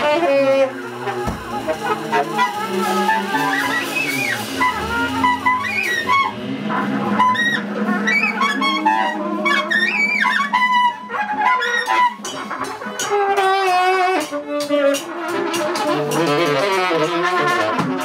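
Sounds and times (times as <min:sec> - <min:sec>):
drums with cymbals: 0:00.0 - 0:11.1
bowed double bass: 0:00.0 - 0:18.0
tenor saxophone: 0:00.0 - 0:18.0
trumpet: 0:00.0 - 0:18.0.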